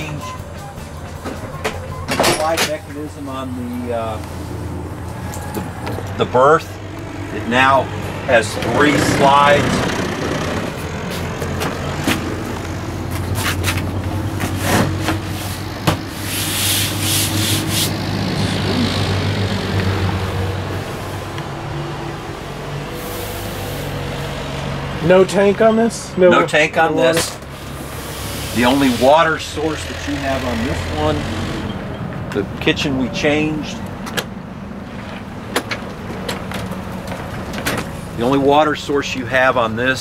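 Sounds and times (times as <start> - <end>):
cushions rubbing and scraping: 13.1 - 18.9.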